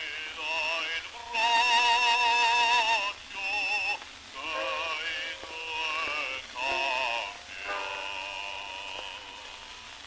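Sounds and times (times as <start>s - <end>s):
bass voice singing opera: 0.0s - 10.0s.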